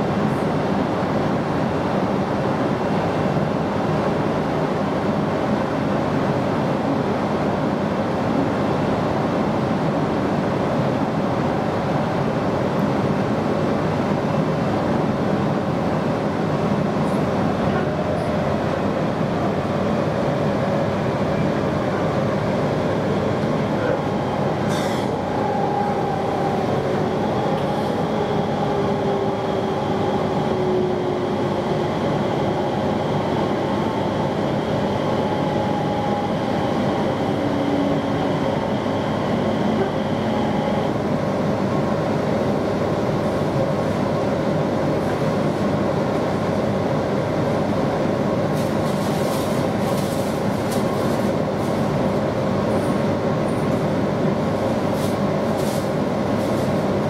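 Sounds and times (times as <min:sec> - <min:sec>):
train wheels on rail: 0:15.9 - 0:41.8, 0:42.4 - 0:57.0.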